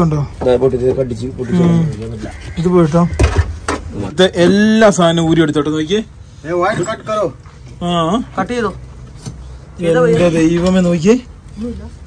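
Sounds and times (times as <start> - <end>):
men talking: 0.0 - 11.7.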